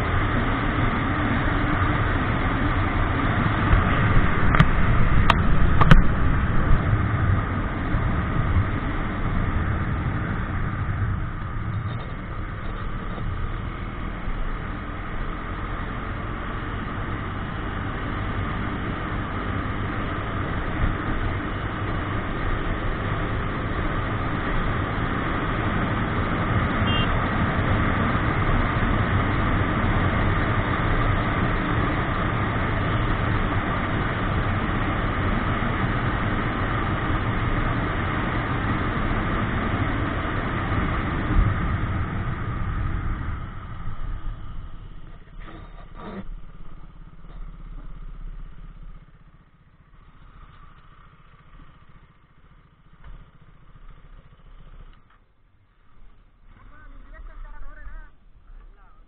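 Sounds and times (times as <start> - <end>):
motorcycle engine running: 0.0 - 59.0
wind and road noise: 0.0 - 59.0.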